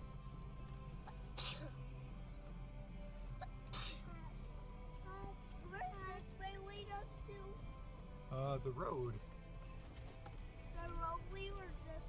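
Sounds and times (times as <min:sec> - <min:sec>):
vehicle drone inside cabin: 0:00.0 - 0:12.0
child's sing-song voice: 0:03.8 - 0:07.7, 0:10.7 - 0:12.0.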